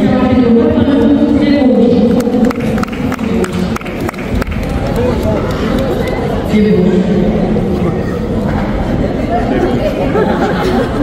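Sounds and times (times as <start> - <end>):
crowd chatter echoing: 0.0 - 11.0
sharp hand claps: 2.2 - 6.2.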